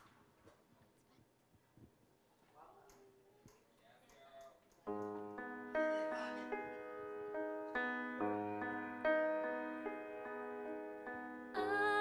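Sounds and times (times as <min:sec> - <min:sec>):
slow gentle grand piano: 0:04.9 - 0:12.0.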